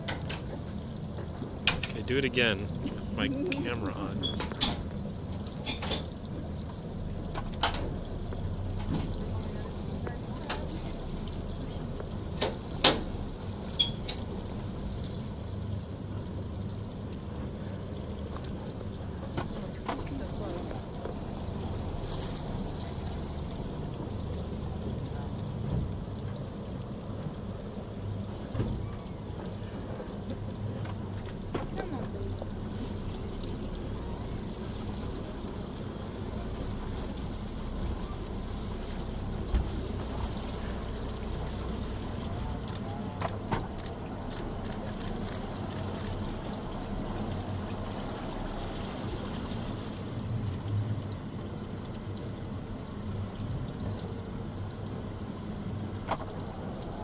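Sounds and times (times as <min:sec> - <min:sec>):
boat engine rumbling: 0:00.0 - 0:57.0.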